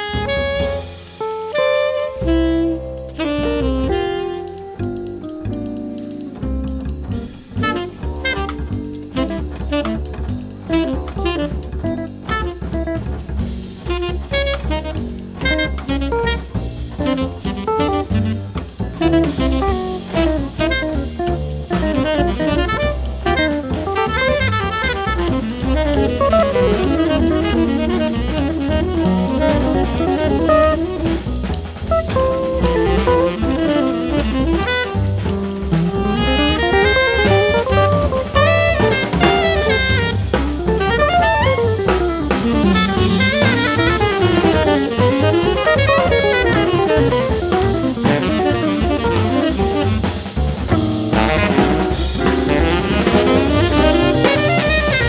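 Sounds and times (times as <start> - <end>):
busy drum kit: 0.0 - 55.0
jazz group playing: 0.0 - 55.0.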